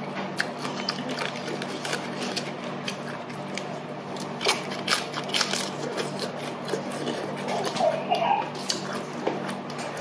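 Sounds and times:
lettuce being chewed: 0:00.0 - 0:10.0.

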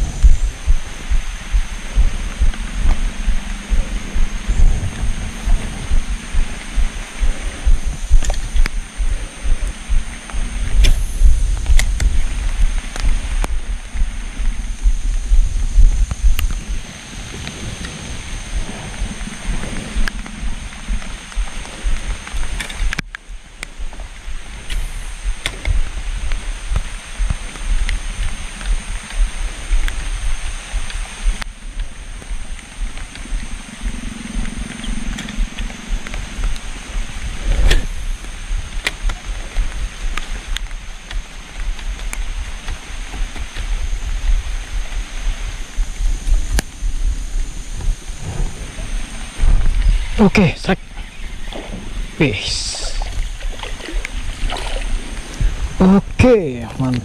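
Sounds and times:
faint rain taps: 0:00.0 - 0:57.0
steady rain falling: 0:00.0 - 0:57.0.

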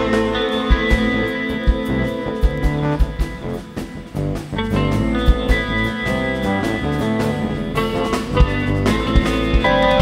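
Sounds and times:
live band playing folk dance music: 0:00.0 - 0:10.0.

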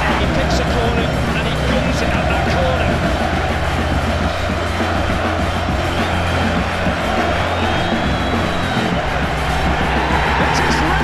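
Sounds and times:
music with steady bass line: 0:00.0 - 0:11.0
stadium crowd cheering: 0:00.0 - 0:11.0.

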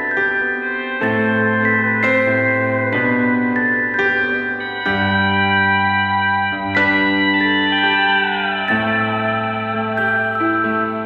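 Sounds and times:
guitar: 0:00.0 - 0:11.0
organ-like keyboard chords: 0:00.0 - 0:11.0.

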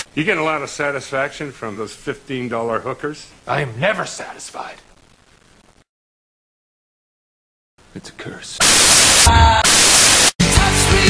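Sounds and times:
loud static hiss: 0:00.0 - 0:05.9, 0:08.6 - 0:11.0.

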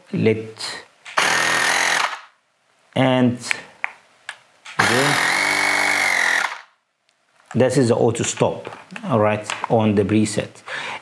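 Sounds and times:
cordless air compressor running: 0:01.2 - 0:02.2, 0:04.8 - 0:06.7.

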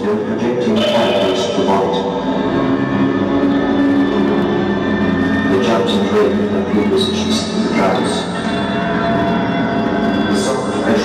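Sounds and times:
live band droning chord: 0:00.8 - 0:06.5.

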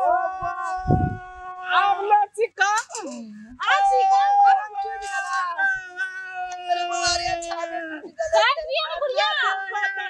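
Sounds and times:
person wailing: 0:00.0 - 0:02.0.

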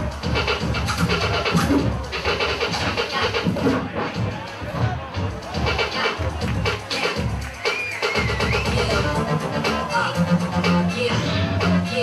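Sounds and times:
turntable scratching: 0:00.0 - 0:12.0.

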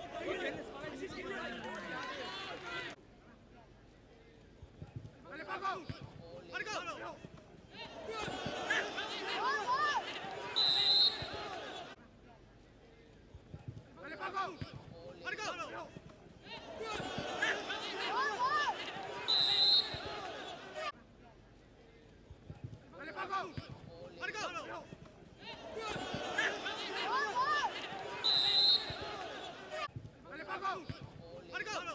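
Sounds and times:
voices shouting: 0:07.8 - 0:12.0, 0:16.5 - 0:20.9, 0:25.4 - 0:29.9
referee's whistle blast: 0:10.5 - 0:11.5, 0:19.2 - 0:20.3, 0:28.2 - 0:29.4.

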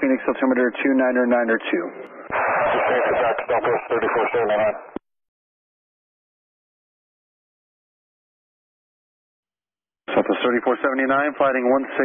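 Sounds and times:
radio transmission voice: 0:01.5 - 0:05.0, 0:10.1 - 0:12.0
radio hiss: 0:02.2 - 0:05.0.

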